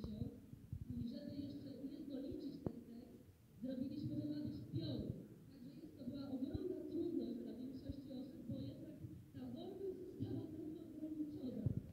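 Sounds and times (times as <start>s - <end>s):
woman speaking over loudspeaker: 0.9s - 11.8s.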